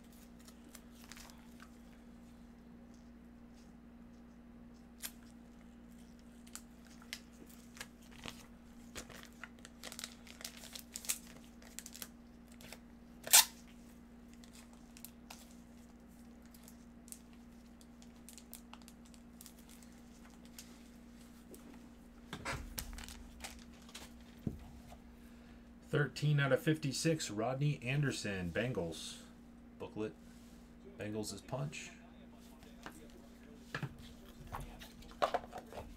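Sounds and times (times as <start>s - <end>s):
packaging clicks and crinkles: 6.2s - 13.6s, 16.4s - 20.7s, 22.7s - 24.3s
packaging rustling: 6.4s - 13.4s, 22.7s - 24.4s
packaging tearing: 6.4s - 13.6s.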